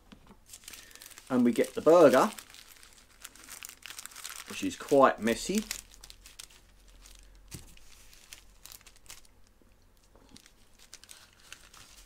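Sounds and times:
paper crinkling: 0.5 - 9.4, 10.0 - 12.0.

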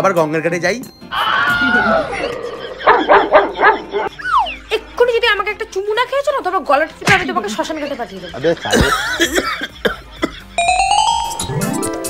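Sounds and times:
dog-like yelps: 1.6 - 4.6.

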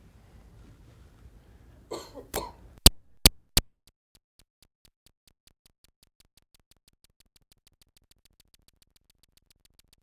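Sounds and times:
person coughing: 1.9 - 2.6
sharp clicks: 2.8 - 10.0.

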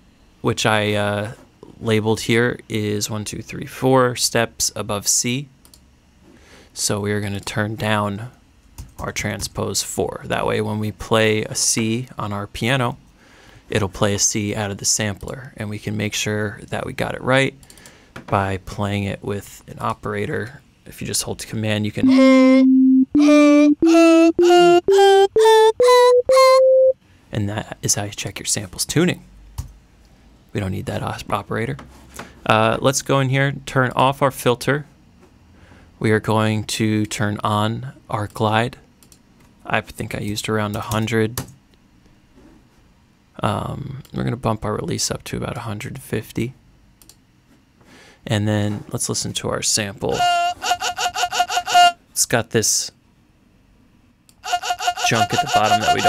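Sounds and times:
sine tone: 22.0 - 24.4, 25.4 - 27.0
pitched vocal sample notes: 22.0 - 27.0, 55.0 - 56.0.

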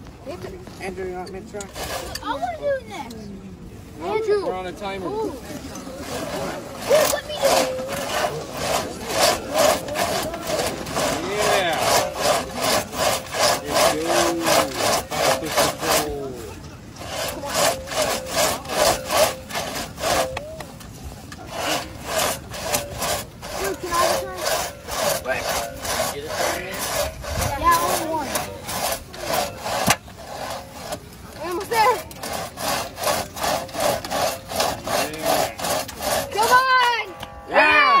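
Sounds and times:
crosscut saw rasping through log: 0.4 - 3.1, 4.2 - 37.4.

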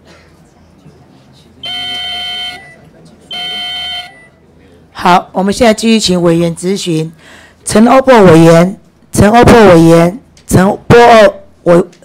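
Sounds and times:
electronic buzzer tones: 1.6 - 4.3.

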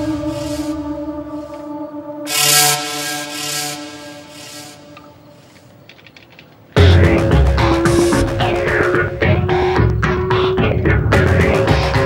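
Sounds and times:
sustained drone chords: 0.0 - 5.7, 6.8 - 12.0
rhythmic rasping scraping noise: 0.0 - 6.2, 6.8 - 12.0.

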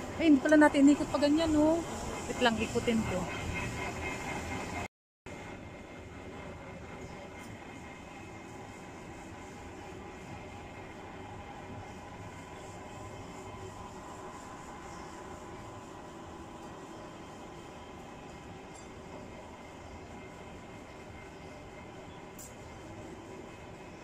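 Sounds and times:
outdoor rumble and hiss: 0.0 - 24.0.

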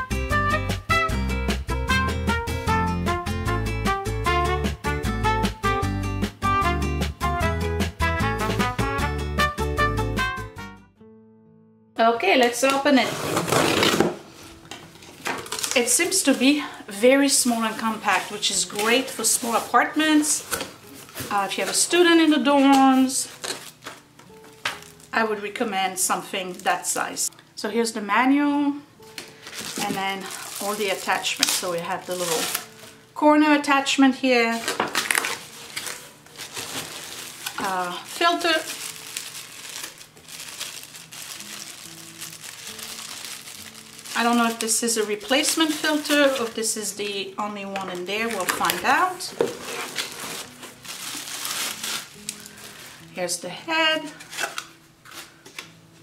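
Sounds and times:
knife slitting packing tape: 13.1 - 14.2, 30.4 - 32.8, 34.7 - 37.7, 54.2 - 55.3
plastic bag crinkling: 14.9 - 27.2, 29.3 - 33.0, 34.5 - 46.8, 47.8 - 53.0, 54.1 - 55.2.

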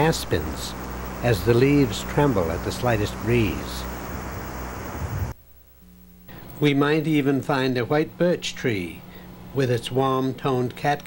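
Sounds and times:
steady hiss: 0.0 - 5.4
low mains hum: 0.0 - 11.0.

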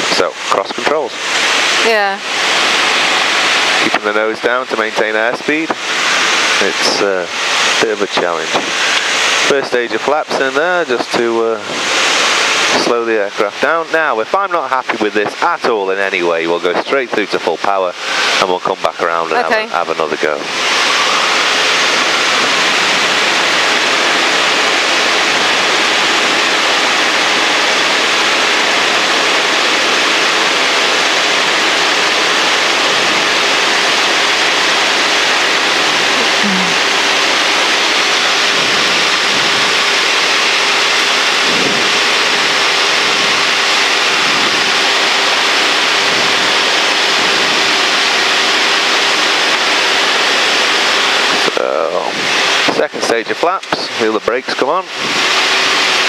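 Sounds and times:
rush of airflow: 0.0 - 9.6, 11.6 - 12.9, 17.9 - 18.5, 20.2 - 52.8, 54.8 - 56.0
aircraft engine and propeller: 0.0 - 56.0.

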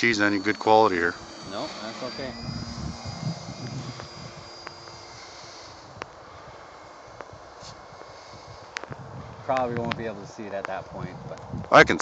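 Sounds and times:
model plane motor whine: 0.0 - 10.8
sharp clicks: 2.6 - 6.2.

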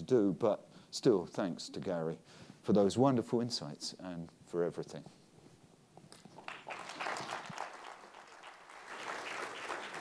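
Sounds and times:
audience applauding: 6.4 - 10.0.

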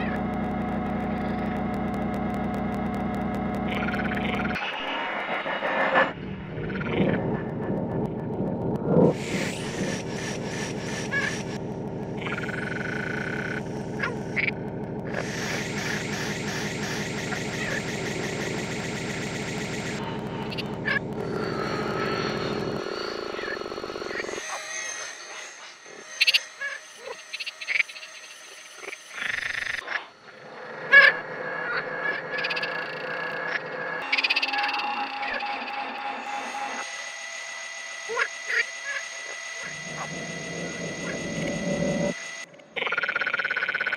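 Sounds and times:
electronic pulsing low chorus: 0.0 - 24.5, 39.7 - 42.2
short processed frog calls: 28.8 - 34.8, 42.7 - 43.9.

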